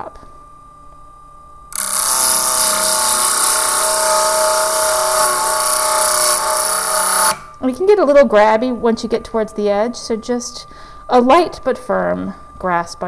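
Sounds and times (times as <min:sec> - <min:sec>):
faint motor running tone: 0:00.0 - 0:07.9
disc grinding whine with hiss: 0:01.8 - 0:07.6.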